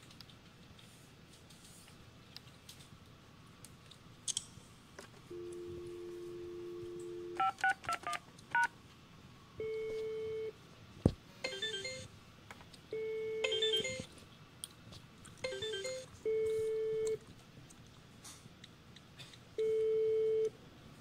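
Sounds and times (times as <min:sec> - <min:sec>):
phone keypad beeps: 0:05.3 - 0:08.7.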